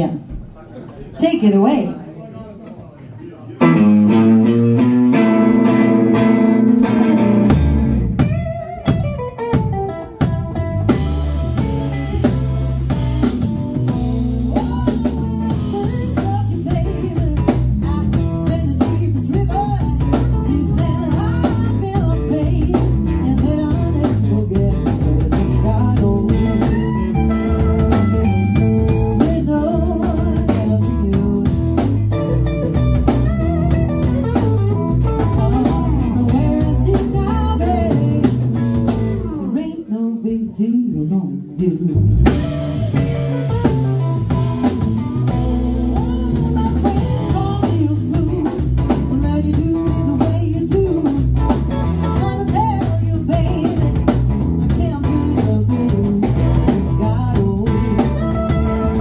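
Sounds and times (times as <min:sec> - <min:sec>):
electric guitar: 0:03.6 - 0:59.0
live blues band: 0:03.6 - 0:59.0
woman singing: 0:14.4 - 0:27.1, 0:28.9 - 0:32.2, 0:35.1 - 0:38.5, 0:39.2 - 0:42.8, 0:45.8 - 0:59.0.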